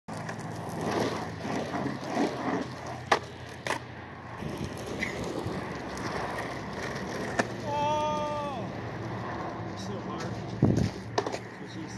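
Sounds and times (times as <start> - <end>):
skateboard clacking on pavement: 0.1 - 11.9
skateboard wheels rolling on asphalt: 0.1 - 11.9.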